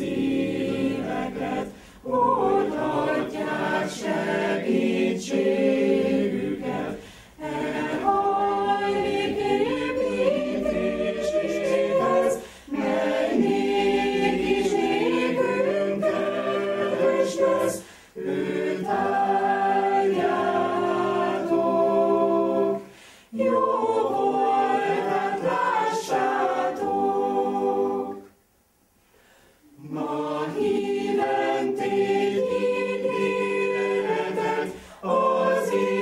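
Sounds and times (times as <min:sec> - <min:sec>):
choir singing unaccompanied: 0:00.0 - 0:28.4, 0:29.6 - 0:36.0.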